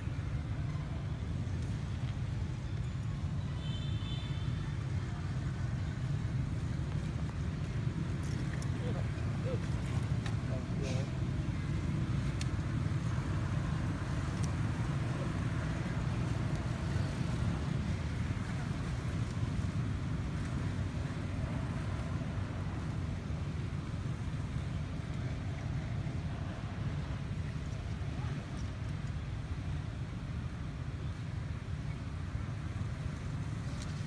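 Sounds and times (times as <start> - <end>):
low rumbling background noise: 0.0 - 34.0.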